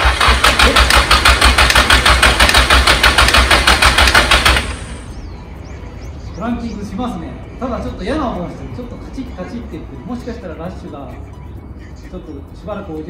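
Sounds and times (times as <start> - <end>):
clicking in engine: 0.0 - 4.9
engine cranking without firing: 0.0 - 5.1.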